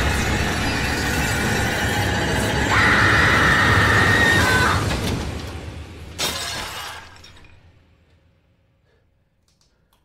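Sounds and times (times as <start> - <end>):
dishes crashing and shattering: 6.2 - 7.6.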